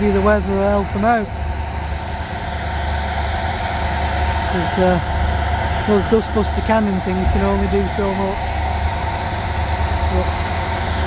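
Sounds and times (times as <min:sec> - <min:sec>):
diesel engine rumble: 0:00.0 - 0:11.0.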